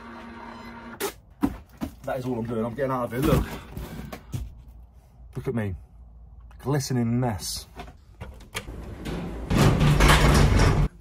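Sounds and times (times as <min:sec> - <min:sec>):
lift doors humming: 0:08.4 - 0:11.0
rushing noise of sliding doors: 0:08.5 - 0:11.0.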